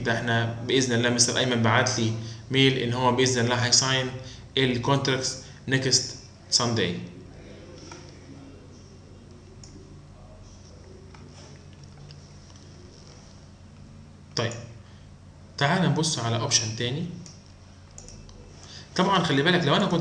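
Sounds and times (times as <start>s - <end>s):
computer mouse clicks: 17.2s - 18.4s.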